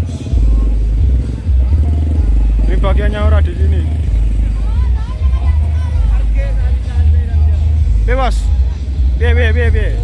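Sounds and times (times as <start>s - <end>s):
faint people's voices: 0.0s - 10.0s.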